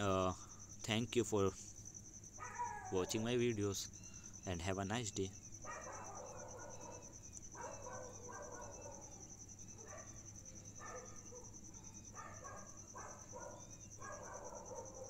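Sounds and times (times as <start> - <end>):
insects chirping: 0.0 - 15.0.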